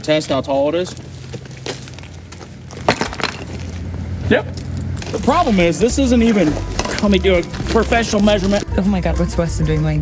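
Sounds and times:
footsteps crunching on gravel: 0.0 - 8.7.

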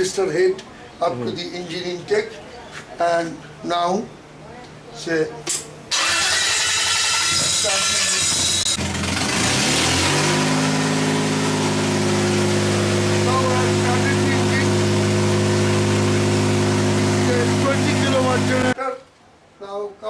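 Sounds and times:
car engine running generator: 5.9 - 18.8.

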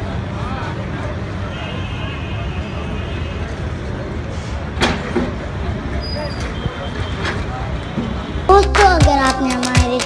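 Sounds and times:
crowd voices: 8.5 - 10.0.

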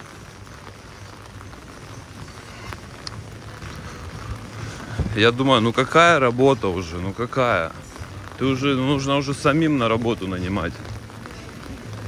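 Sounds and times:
rain on wet paving: 0.0 - 12.0.

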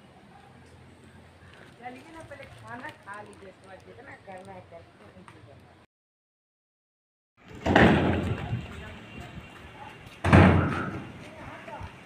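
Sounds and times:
loud thud: 7.5 - 8.5, 10.2 - 11.1.

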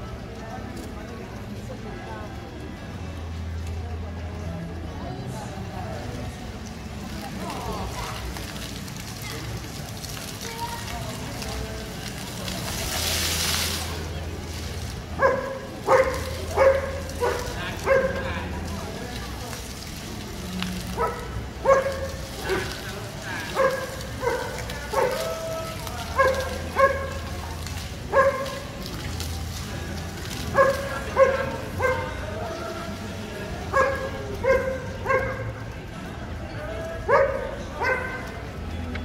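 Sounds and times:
dog barking: 15.2 - 18.2, 21.0 - 22.1, 23.5 - 25.3, 26.1 - 27.2, 28.1 - 28.6, 30.6 - 32.2, 33.7 - 35.4, 37.1 - 38.3.

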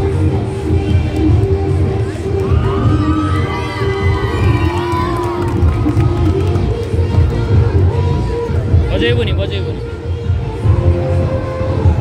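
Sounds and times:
dance music with heavy bass: 0.0 - 12.0
children shouting and cheering: 2.2 - 8.7.

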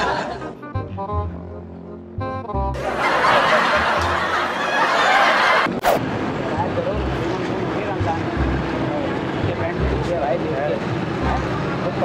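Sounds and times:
background music: 0.0 - 4.8, 6.4 - 12.0
traffic noise: 2.7 - 12.0
faint voices of passers-by: 3.0 - 12.0.

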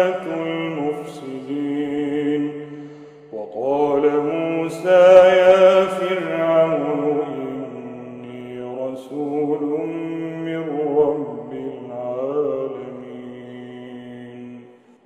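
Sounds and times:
man reciting melodically: 0.0 - 14.7.

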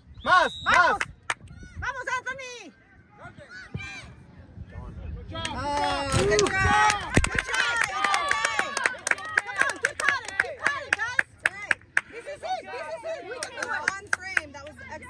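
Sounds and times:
voices talking and calling out: 0.0 - 15.0.

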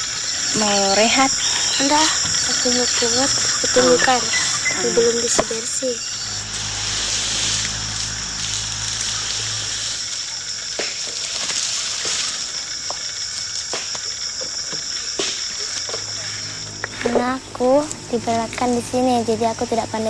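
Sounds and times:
low hum: 0.0 - 10.4, 16.0 - 20.0
insects chirring: 0.0 - 20.0.

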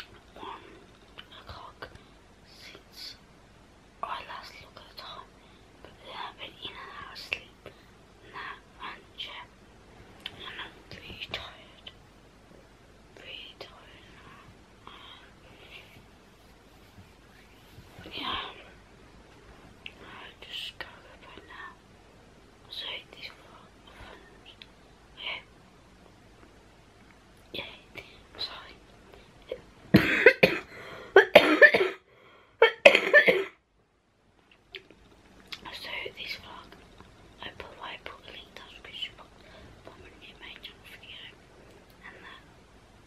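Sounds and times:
girl whispering: 0.0 - 3.2, 4.0 - 7.7, 8.3 - 9.5, 10.3 - 12.0, 13.2 - 16.0, 18.0 - 18.8, 19.9 - 21.8, 22.7 - 24.6, 25.2 - 25.5, 27.5 - 28.8, 35.6 - 36.8, 37.4 - 41.4, 42.0 - 42.5
person coughing: 29.9 - 32.0, 32.6 - 33.6.

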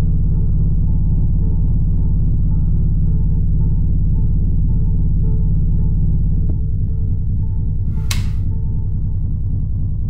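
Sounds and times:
droning ambient film score: 0.0 - 10.0
light switch click: 7.9 - 8.5.

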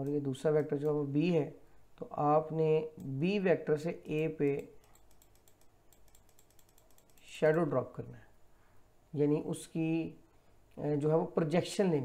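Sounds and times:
faint rapid computer clicking: 0.0 - 1.2, 2.8 - 3.4, 4.1 - 7.8.

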